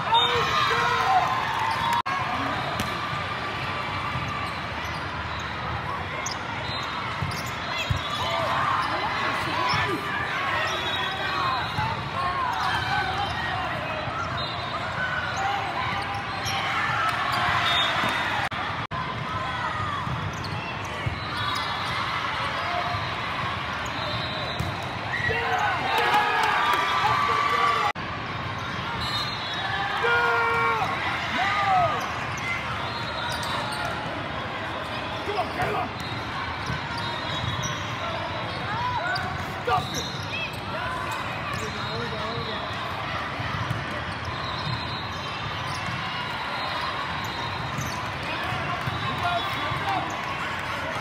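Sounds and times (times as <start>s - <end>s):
spectator chatter: 0.0s - 51.0s.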